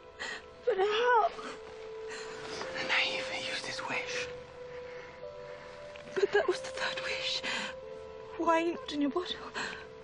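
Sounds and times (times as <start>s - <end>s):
soft film score: 0.0s - 10.0s.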